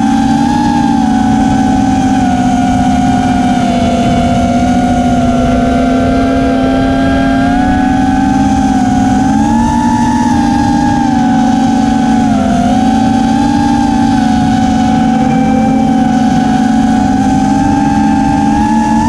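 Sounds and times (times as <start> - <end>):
drone motors whining: 0.0 - 19.0.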